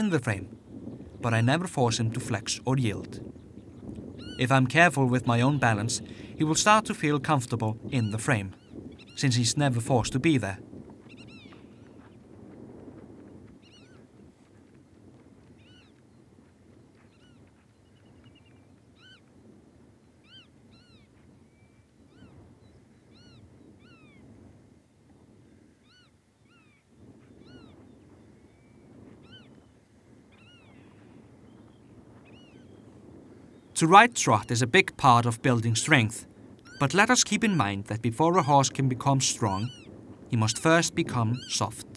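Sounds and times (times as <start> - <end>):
bird chirping and trilling: 3.4 - 7.1, 7.8 - 9.6, 11.1 - 12.0, 13.6 - 14.0, 15.6 - 16.0, 17.0 - 19.3, 20.2 - 24.2, 25.8 - 26.8, 27.4 - 29.7, 30.3 - 32.8, 35.6 - 41.9.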